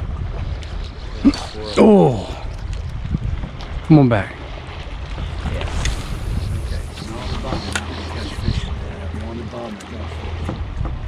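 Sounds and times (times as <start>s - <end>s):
wind buffeting microphone: 0.0s - 11.0s
boat engine idling: 3.3s - 11.0s.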